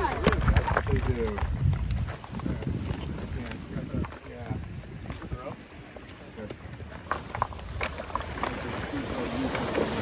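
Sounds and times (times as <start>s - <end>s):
stones knocking and clattering: 0.0s - 10.0s
water splashing: 6.8s - 10.0s.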